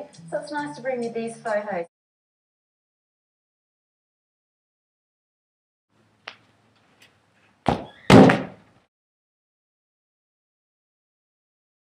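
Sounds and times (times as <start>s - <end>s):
ball banging against hard surface: 7.7s - 8.6s
ball kick thud: 7.7s - 8.6s.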